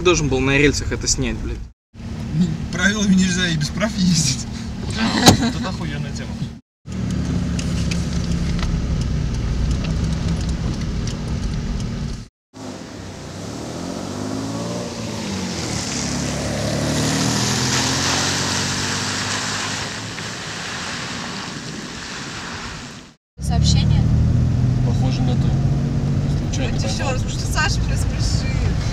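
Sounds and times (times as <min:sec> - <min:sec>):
car engine drone: 0:02.0 - 0:21.4, 0:23.4 - 0:28.9
tyres hissing on wet asphalt: 0:12.6 - 0:23.2.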